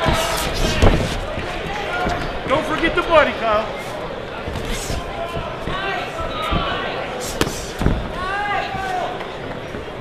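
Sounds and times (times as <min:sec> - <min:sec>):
murmuring crowd: 0:00.0 - 0:10.0.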